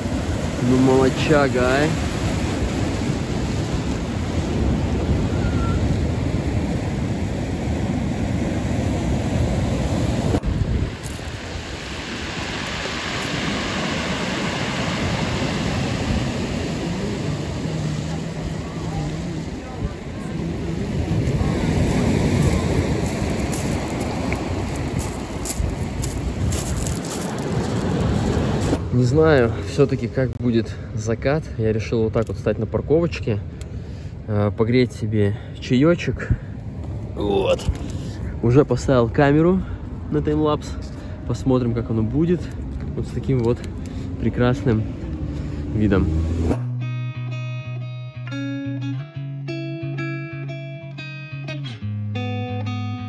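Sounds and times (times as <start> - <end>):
wind buffeting microphone: 0.0 - 28.9
waves breaking over rocks: 0.0 - 29.1.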